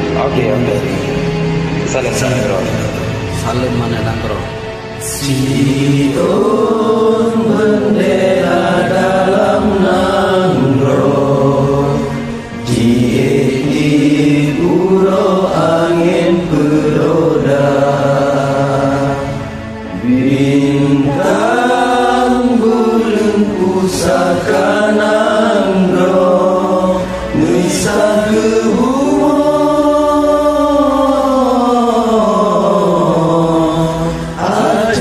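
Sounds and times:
chanted singing over music: 0:00.0 - 0:35.0.

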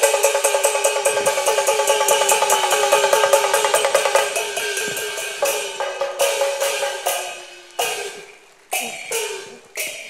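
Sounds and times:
percussion striking metal and wood: 0:00.0 - 0:10.0.

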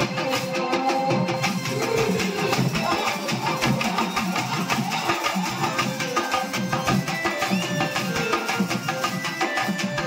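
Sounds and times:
drums played with sticks: 0:00.0 - 0:10.0.

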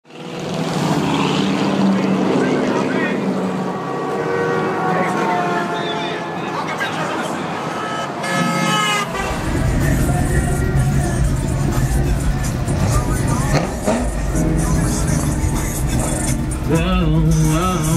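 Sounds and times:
people talking: 0:01.9 - 0:03.3, 0:04.9 - 0:07.8, 0:09.1 - 0:17.9
horn tooting: 0:03.6 - 0:06.6, 0:07.6 - 0:17.7.

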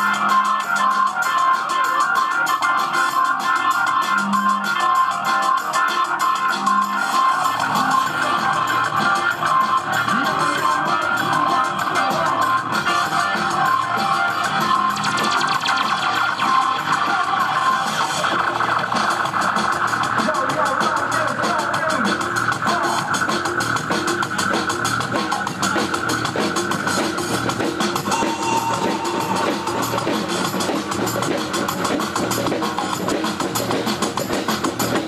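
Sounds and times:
live band music over pa: 0:00.0 - 0:35.0.

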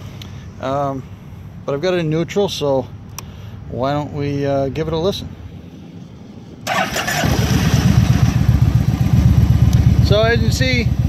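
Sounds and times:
motorcycle starter cranking: 0:06.7 - 0:08.5
motorcycle engine idling: 0:06.7 - 0:11.0.

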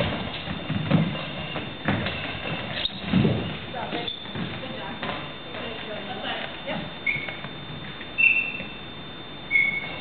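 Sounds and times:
sports shoes squeaking on floor: 0:00.0 - 0:10.0.

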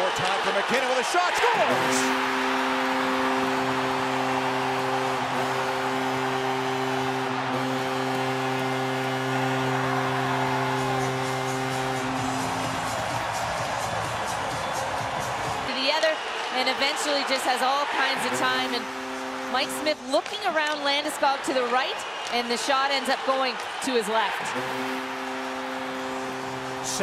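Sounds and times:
crowd cheering: 0:00.0 - 0:27.0
low goal horn blast: 0:01.4 - 0:13.1, 0:16.9 - 0:22.3, 0:22.9 - 0:27.0.

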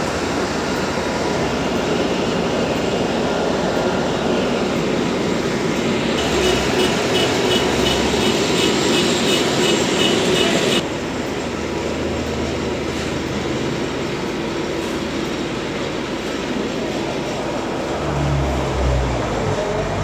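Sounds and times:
vehicle rumbling and rattling: 0:00.0 - 0:20.0.

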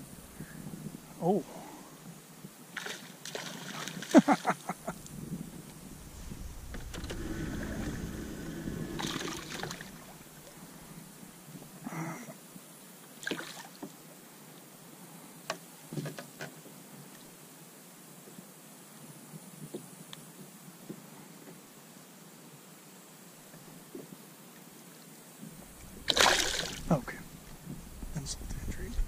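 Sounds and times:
man laughing: 0:04.1 - 0:05.0
boat hull rumbling: 0:04.8 - 0:11.4, 0:25.6 - 0:29.0.

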